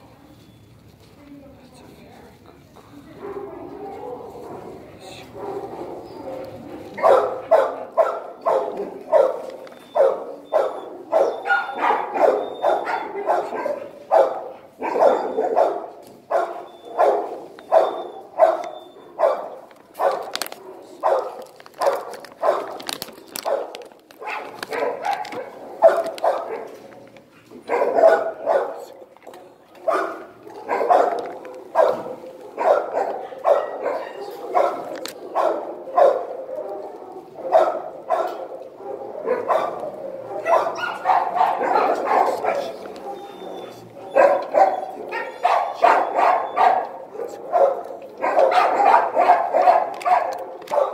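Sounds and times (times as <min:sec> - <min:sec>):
dog barking: 0:03.2 - 0:26.9, 0:27.5 - 0:29.0, 0:29.8 - 0:50.9.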